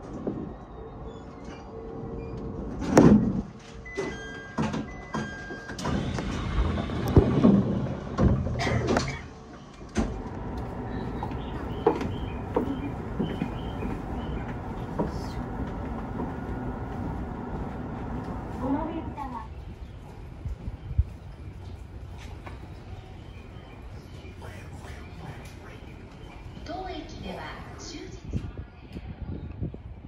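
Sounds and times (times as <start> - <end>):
steady background noise: 0.0 - 30.0
sliding doors clunking: 1.3 - 27.8.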